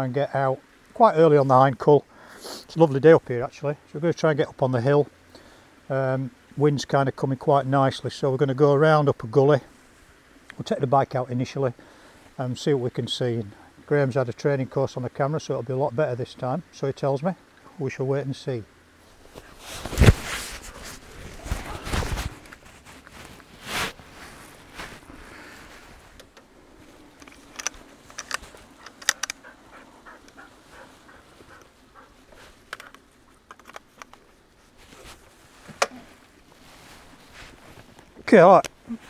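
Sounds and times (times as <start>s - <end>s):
clothing and kit rustling: 19.0s - 39.0s
small clicks: 27.2s - 29.4s, 32.7s - 34.2s.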